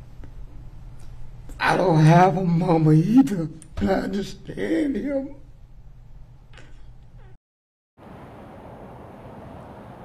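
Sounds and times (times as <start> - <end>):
outdoor low rumble with hiss: 0.0 - 7.4.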